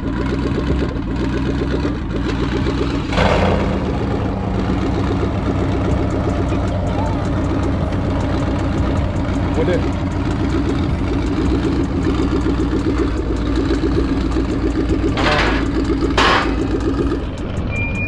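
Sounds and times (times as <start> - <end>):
truck engine idling: 0.0 - 18.0.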